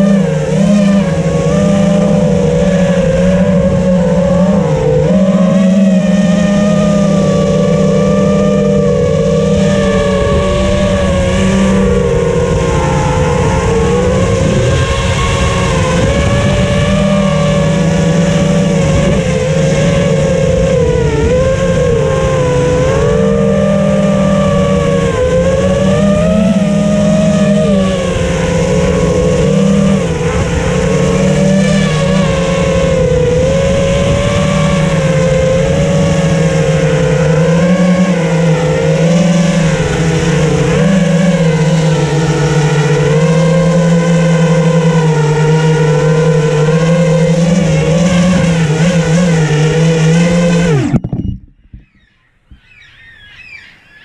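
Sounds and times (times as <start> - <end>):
drone motors buzzing whine: 0.0 - 54.0.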